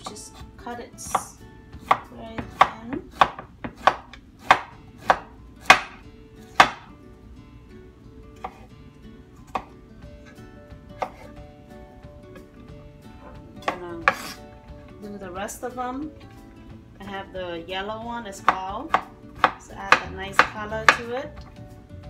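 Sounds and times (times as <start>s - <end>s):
knife chopping on wooden board: 1.9s - 6.9s, 8.4s - 8.7s, 9.5s - 9.7s, 11.0s - 11.3s, 13.2s - 14.4s, 18.4s - 21.2s.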